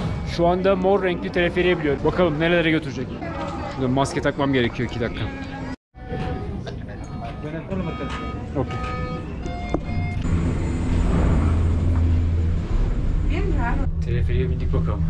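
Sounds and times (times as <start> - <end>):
turnstile gate beeps: 6.0 - 11.2
machinery rumble with high whine: 9.6 - 15.0.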